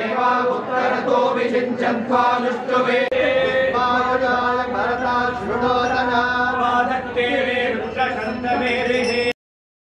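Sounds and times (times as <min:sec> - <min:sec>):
voices chanting a mantra: 0:00.0 - 0:09.3.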